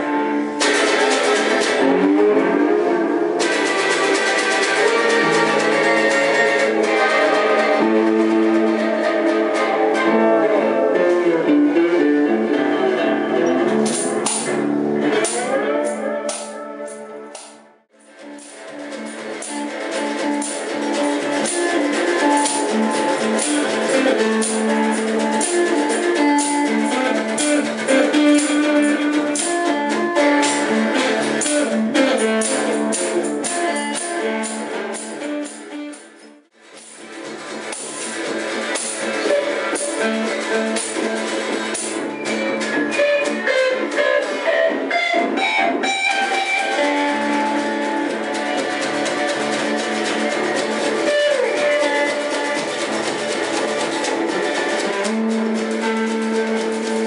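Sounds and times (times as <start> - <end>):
electric guitar playing: 0.0 - 57.0.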